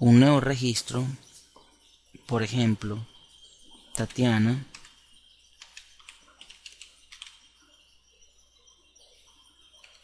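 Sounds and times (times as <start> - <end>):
computer keyboard typing clicks: 4.0 - 5.0, 5.6 - 7.5.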